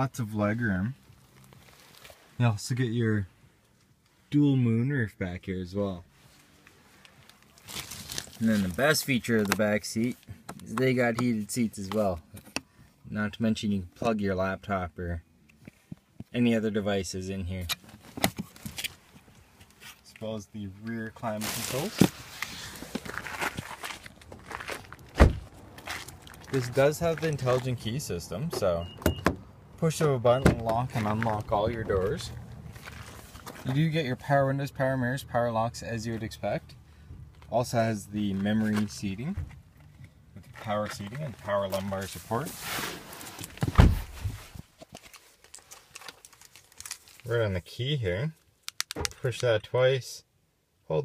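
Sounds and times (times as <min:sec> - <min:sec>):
rustling: 0:01.0 - 0:02.5, 0:20.9 - 0:27.9, 0:30.0 - 0:33.9, 0:38.2 - 0:47.4
footsteps on gritty pavement: 0:21.4 - 0:28.0, 0:30.6 - 0:33.8
dull thump: 0:25.2 - 0:25.5, 0:43.6 - 0:44.4.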